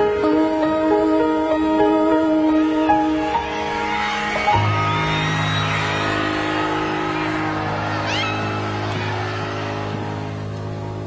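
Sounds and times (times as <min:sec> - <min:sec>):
fans shrieking: 0:00.0 - 0:11.0
arena crowd cheering: 0:02.7 - 0:11.0.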